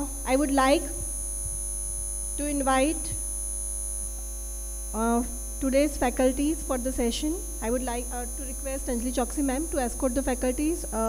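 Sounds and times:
low electrical mains hum: 0:00.0 - 0:11.0
thin high whine: 0:00.0 - 0:11.0.

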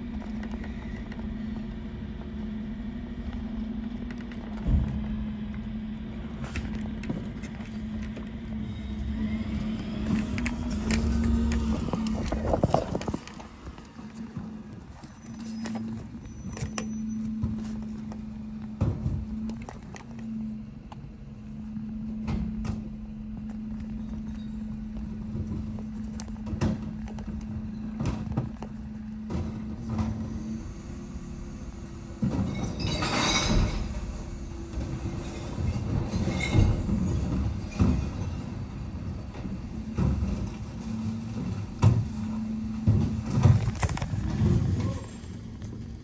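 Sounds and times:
low hydraulic hum: 0:00.0 - 0:46.0.

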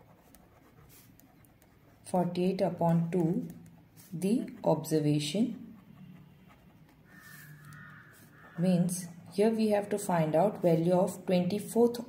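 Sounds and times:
faint animal call: 0:07.0 - 0:08.6.

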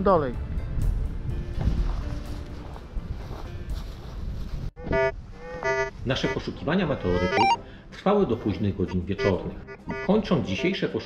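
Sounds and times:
wind buffeting microphone: 0:00.4 - 0:06.6
faint background music: 0:06.0 - 0:11.0
short electronic tone: 0:07.2 - 0:07.6.

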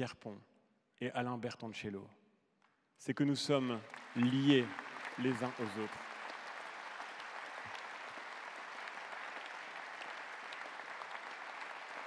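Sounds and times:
large audience applauding: 0:03.5 - 0:12.0.

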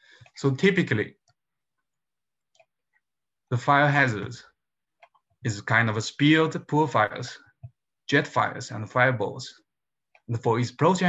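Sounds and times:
man talking: 0:00.4 - 0:01.2, 0:03.5 - 0:04.5, 0:05.5 - 0:07.4, 0:08.1 - 0:09.6, 0:10.3 - 0:11.0.

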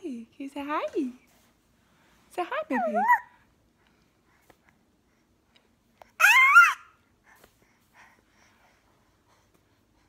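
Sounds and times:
infant squealing: 0:06.2 - 0:07.0.

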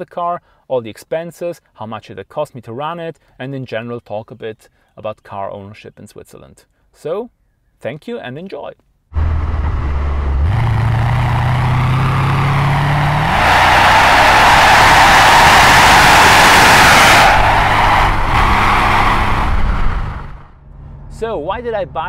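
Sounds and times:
car engine running: 0:09.2 - 0:20.5
wind and tyre noise: 0:09.2 - 0:21.1.

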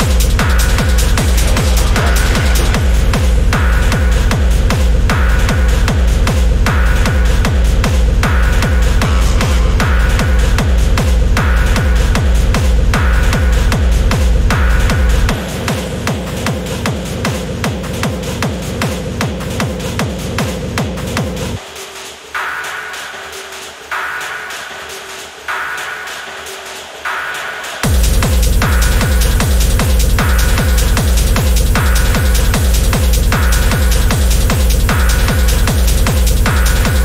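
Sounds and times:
held synth drone: 0:00.0 - 0:04.0
kick drum beat: 0:00.0 - 0:21.6, 0:27.8 - 0:37.0
dark techno music: 0:00.0 - 0:37.0.

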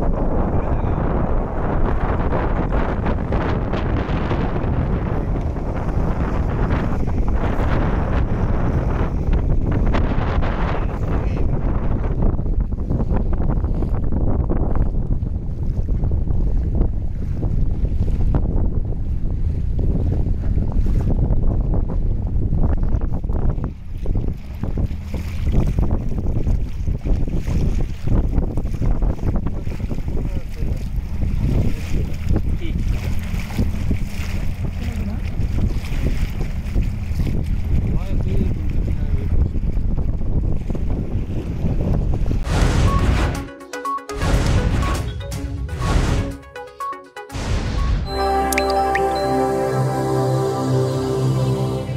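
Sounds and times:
wind buffeting microphone: 0:00.0 - 0:42.5
boat engine rumble: 0:00.0 - 0:43.2
boat motor running: 0:23.2 - 0:28.0, 0:30.0 - 0:40.4.

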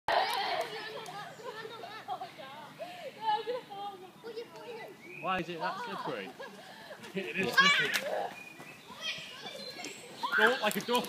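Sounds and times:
children chattering and calling out: 0:00.1 - 0:11.0.

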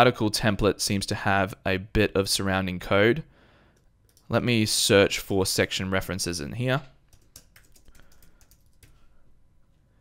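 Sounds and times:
keyboard typing: 0:03.8 - 0:04.3, 0:07.1 - 0:09.0.

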